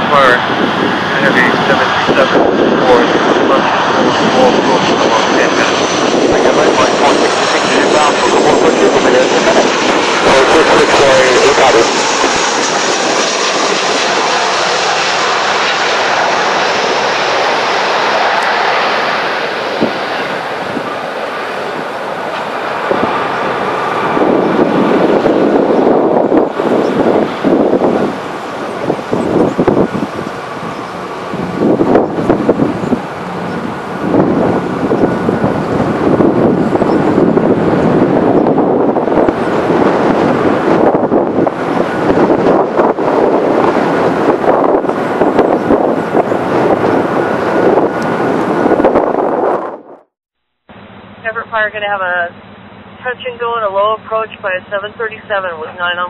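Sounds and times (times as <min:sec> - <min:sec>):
jet engines roaring: 0:00.0 - 0:50.1, 0:50.8 - 0:56.0.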